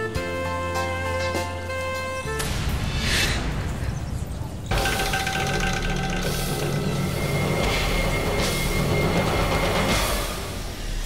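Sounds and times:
tense dramatic music: 0:00.3 - 0:11.0.

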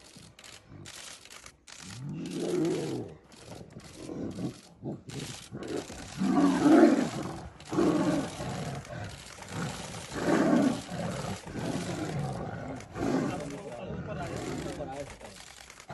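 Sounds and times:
tigers roaring: 0:00.4 - 0:15.9.

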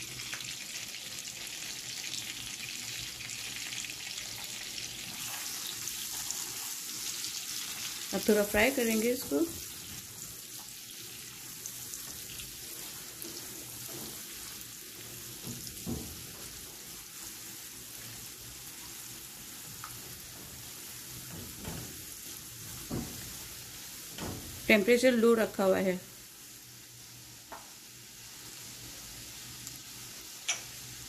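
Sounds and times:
garlic sizzling in oil: 0:00.0 - 0:31.0
spatula scraping a pan: 0:05.0 - 0:07.1, 0:12.0 - 0:24.2.

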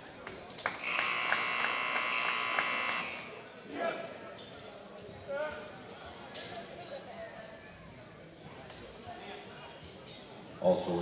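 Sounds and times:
distant crowd voices: 0:00.0 - 0:11.0
scoreboard buzzer tone: 0:00.8 - 0:03.3.

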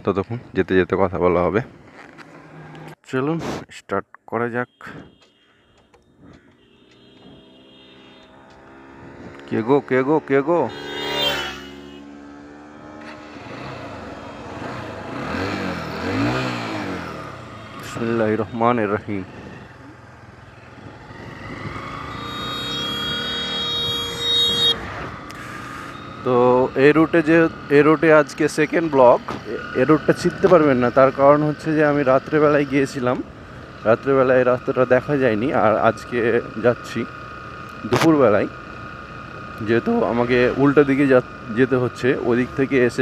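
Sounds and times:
motorcycle engine approaching: 0:06.4 - 0:43.0
high-pitched tone: 0:10.4 - 0:12.1, 0:21.7 - 0:25.0.

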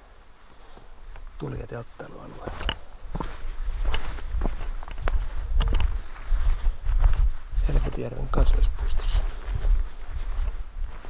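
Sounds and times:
footsteps on dirt path: 0:00.4 - 0:11.0.

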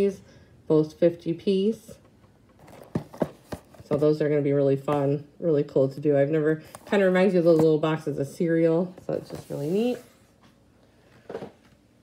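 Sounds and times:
cardboard boxes rustling: 0:02.6 - 0:04.1, 0:09.1 - 0:10.2.

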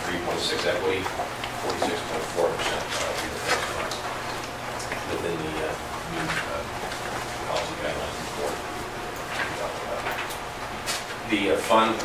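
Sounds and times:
paper rustling: 0:01.6 - 0:04.1.

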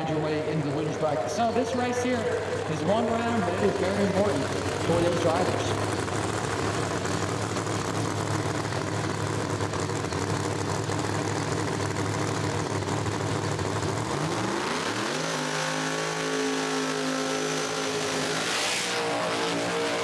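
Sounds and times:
race car engine revving: 0:00.0 - 0:20.0.

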